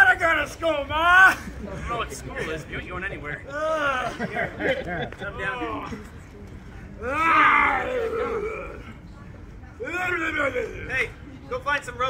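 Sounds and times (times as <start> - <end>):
man groaning: 7.0 - 8.8.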